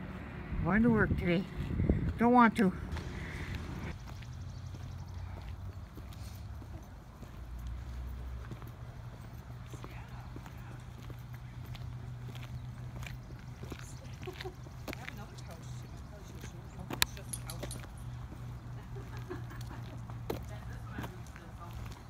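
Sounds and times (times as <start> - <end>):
footsteps on pavement: 1.4 - 22.0.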